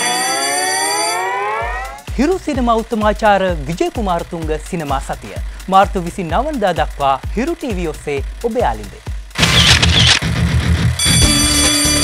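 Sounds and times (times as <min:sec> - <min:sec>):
synthesized rising tone: 0:00.0 - 0:02.1
low bass tone: 0:08.0 - 0:12.0.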